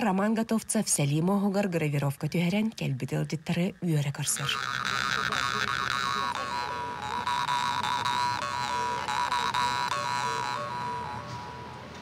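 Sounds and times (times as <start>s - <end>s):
jaw harp twanging drone: 4.3s - 12.0s.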